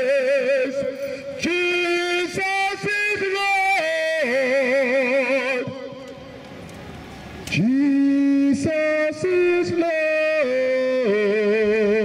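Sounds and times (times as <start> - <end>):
man singing into a microphone: 0.0 - 6.4, 7.5 - 12.0.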